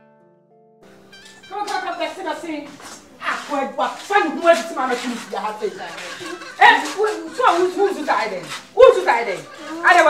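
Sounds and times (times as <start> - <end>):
women talking: 1.5 - 10.0.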